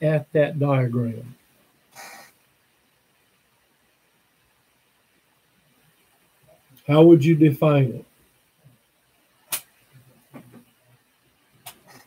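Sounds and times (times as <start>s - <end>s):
short sharp clicks: 9.5s - 9.7s.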